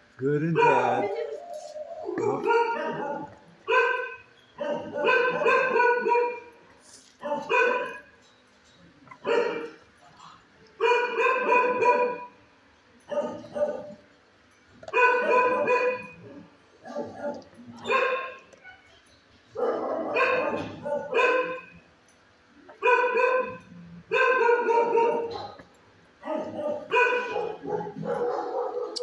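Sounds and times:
dogs barking: 0:00.4 - 0:01.4, 0:02.0 - 0:08.2, 0:09.0 - 0:12.4, 0:13.0 - 0:14.1, 0:14.8 - 0:18.6, 0:19.5 - 0:21.8, 0:22.6 - 0:29.0.

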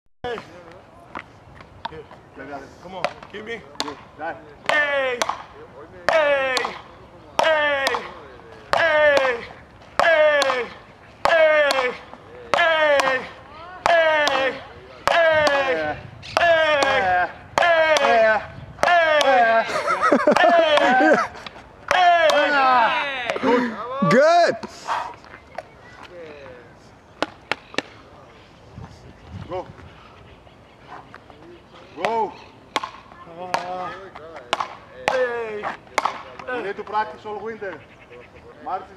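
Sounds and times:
wooden paddles hitting ball: 0:03.0 - 0:19.5, 0:27.2 - 0:28.0, 0:32.0 - 0:36.6
person shouting: 0:08.8 - 0:19.7, 0:21.9 - 0:24.6.

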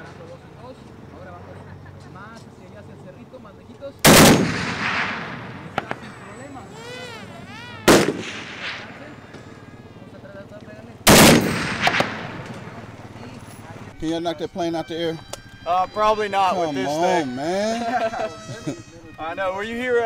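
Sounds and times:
machine gun firing with echo: 0:04.0 - 0:06.2, 0:07.9 - 0:09.4, 0:11.0 - 0:13.4.

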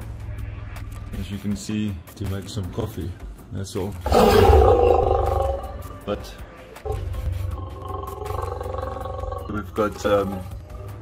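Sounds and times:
lion roaring through window: 0:04.0 - 0:05.9, 0:06.9 - 0:09.8.

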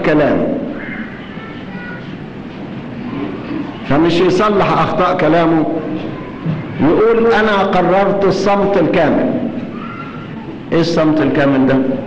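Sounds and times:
recording hiss and rumble: 0:00.0 - 0:12.0.

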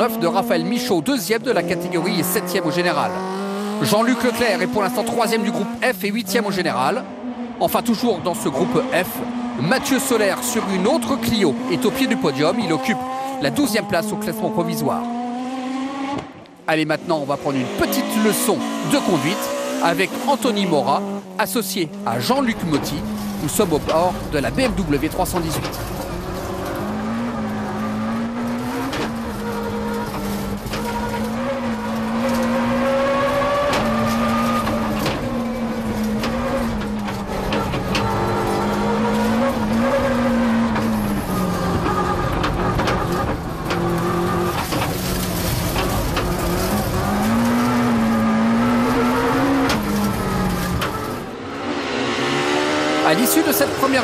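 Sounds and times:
car engine approaching outside: 0:00.0 - 0:54.0
rally car engine revving in cabin: 0:00.0 - 0:54.0.

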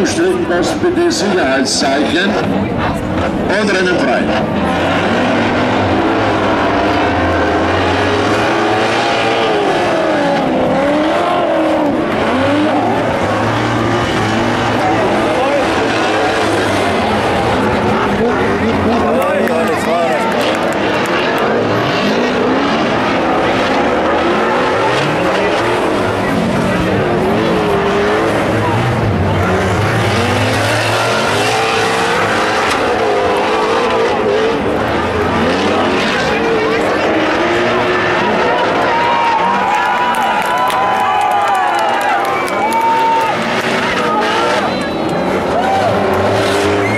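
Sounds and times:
race car engines revving: 0:00.0 - 0:46.9.

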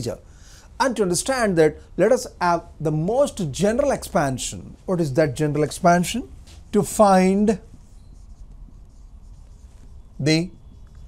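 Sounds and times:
marker scratching on whiteboard: 0:05.0 - 0:11.0.

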